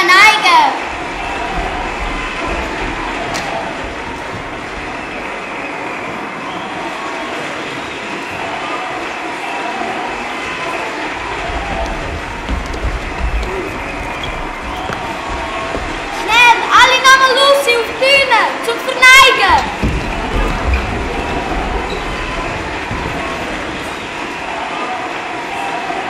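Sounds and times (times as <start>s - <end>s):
audience applauding: 0.7s - 17.0s, 19.4s - 26.0s.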